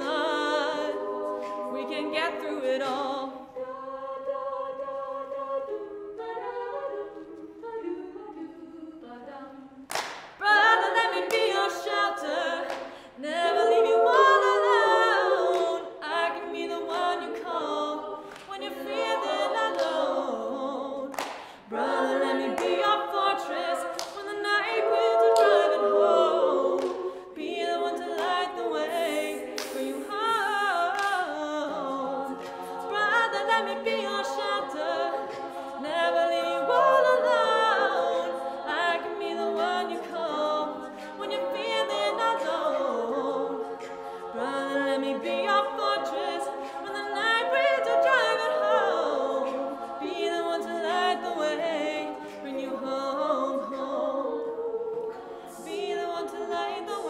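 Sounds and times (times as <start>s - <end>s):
a cappella group singing: 0.0s - 57.0s.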